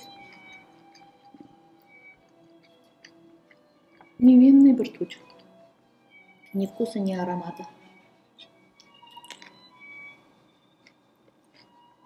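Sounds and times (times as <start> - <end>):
biting and chewing food: 0.0 - 4.2, 8.4 - 12.0.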